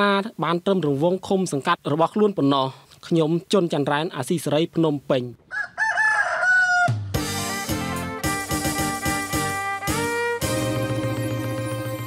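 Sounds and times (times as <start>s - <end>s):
rooster crowing: 5.5s - 7.1s.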